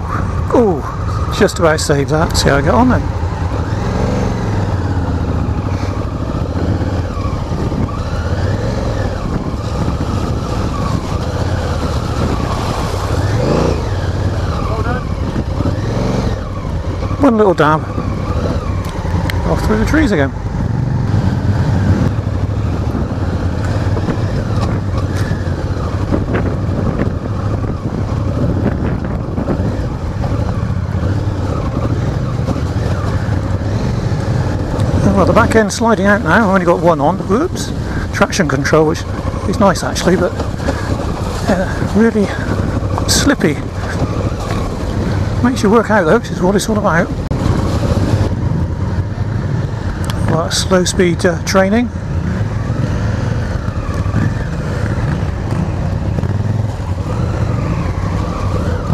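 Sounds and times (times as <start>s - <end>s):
motorcycle engine running: 0.0s - 58.9s
wind noise on microphone: 2.1s - 17.2s, 17.8s - 58.9s.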